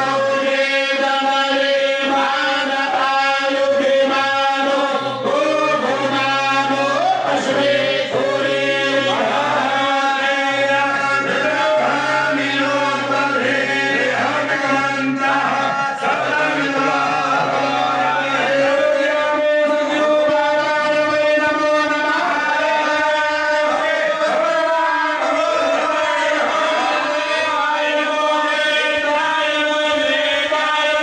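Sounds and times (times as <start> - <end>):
voices chanting a mantra: 0.0 - 31.0.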